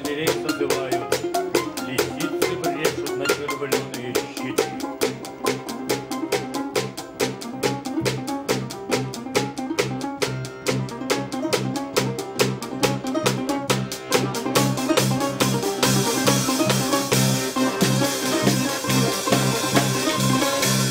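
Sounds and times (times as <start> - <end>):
folk instrumental ensemble playing: 0.0 - 20.9.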